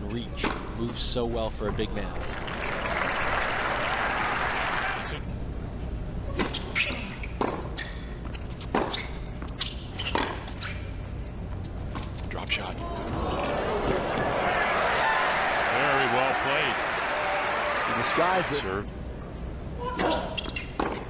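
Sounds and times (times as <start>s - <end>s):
crowd applauding: 2.1s - 5.1s, 13.1s - 18.8s
tennis ball bouncing: 7.3s - 9.0s, 10.0s - 10.8s, 20.8s - 21.0s
rackets hitting tennis ball: 7.4s - 7.8s.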